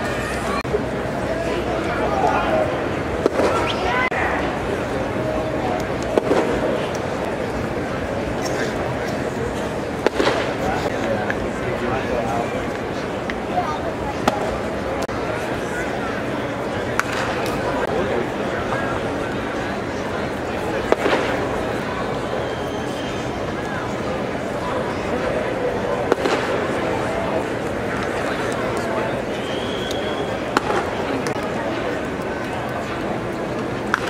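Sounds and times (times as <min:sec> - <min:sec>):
crowd chatter: 0:00.0 - 0:34.0
baseball bat cracking ball: 0:30.5 - 0:31.4.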